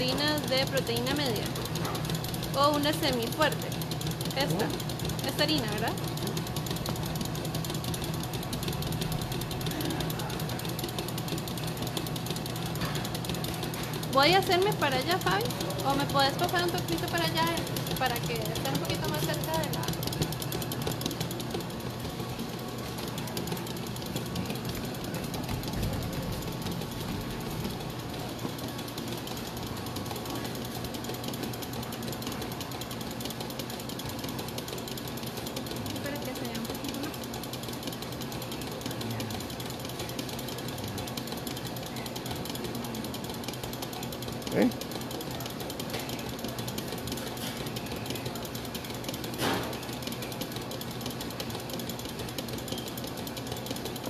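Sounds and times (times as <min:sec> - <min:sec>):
electric stand mixer running: 0:00.0 - 0:54.0.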